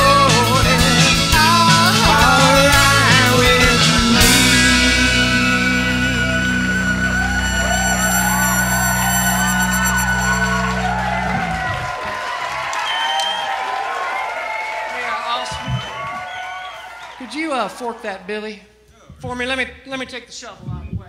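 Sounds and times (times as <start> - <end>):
rock band chord ringing: 0.0 - 12.1
crowd whooping and cheering: 4.2 - 18.0.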